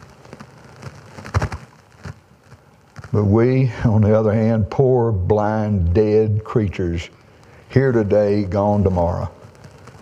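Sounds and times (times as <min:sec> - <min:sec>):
faint crackling rustle: 0:00.0 - 0:10.0
microphone tap: 0:00.3 - 0:03.2.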